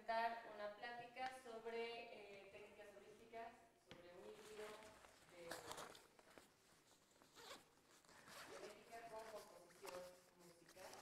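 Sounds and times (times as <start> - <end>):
backpack zipper rasps: 7.3 - 8.9.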